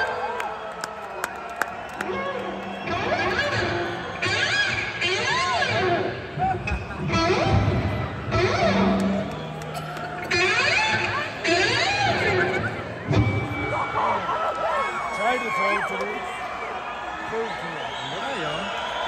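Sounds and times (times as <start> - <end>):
crowd noise: 0.0 - 19.0
electric guitar lead with bends: 2.1 - 9.4, 10.2 - 14.0.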